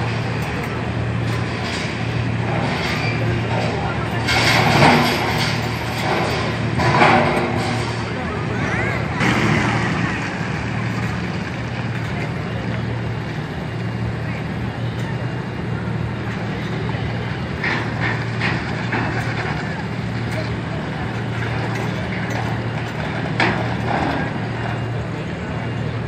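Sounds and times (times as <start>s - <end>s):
engine running at low revs: 0.0s - 26.0s
people's voices: 0.0s - 26.0s.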